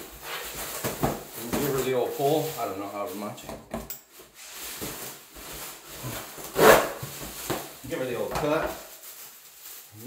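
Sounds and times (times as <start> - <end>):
plastic sheeting crinkling: 0.0 - 3.4, 4.1 - 10.0.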